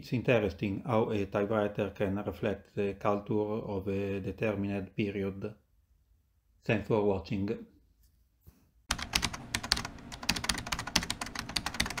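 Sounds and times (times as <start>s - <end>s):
typewriter keys clacking: 8.9s - 12.0s.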